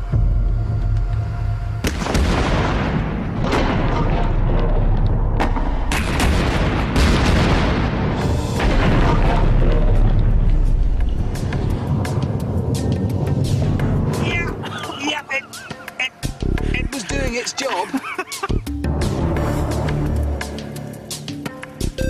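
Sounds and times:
background music: 0.0 - 22.0
explosion boom: 1.8 - 14.6.

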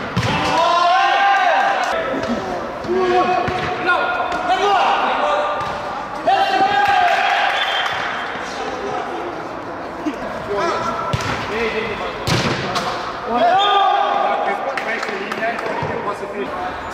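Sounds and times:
players shouting: 0.2 - 9.2.

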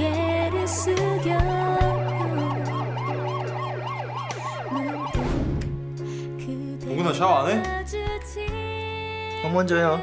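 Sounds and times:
emergency siren yelping: 0.0 - 5.8
background music: 0.0 - 10.0.

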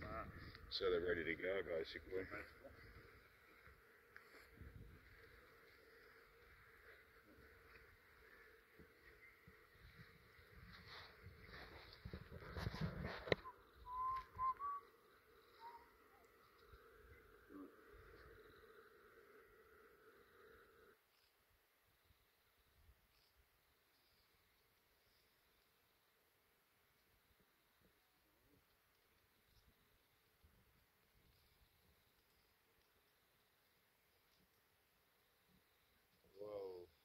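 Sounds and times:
bees humming: 0.0 - 12.1, 13.3 - 21.3
rustle: 1.8 - 14.3, 20.2 - 37.0
bird chirps: 13.4 - 18.9.

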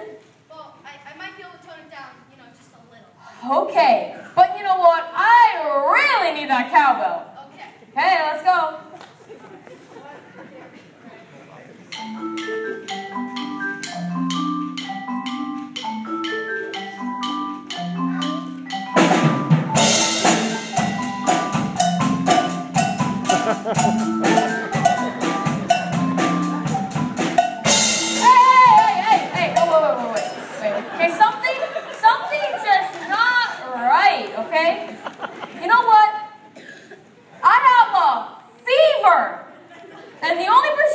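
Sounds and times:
marimbas playing melodic pattern: 11.9 - 31.0
drum kit: 11.9 - 31.2
voices: 28.2 - 35.0.

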